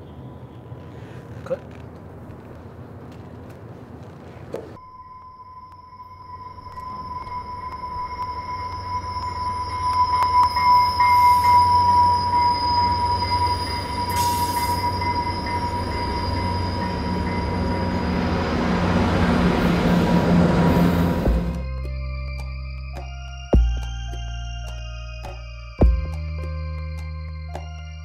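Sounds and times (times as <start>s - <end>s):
train wheels squealing: 6.2s - 21.5s
train rumble: 6.8s - 21.7s.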